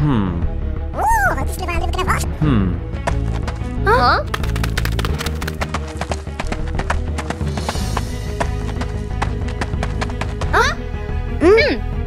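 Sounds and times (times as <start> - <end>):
quick clip-clopping clicks: 4.2 - 10.4.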